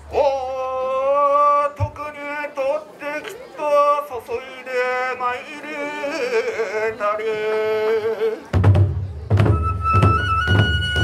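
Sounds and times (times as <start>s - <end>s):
man chanting: 0.0s - 8.5s
bamboo flute high note: 9.4s - 11.0s.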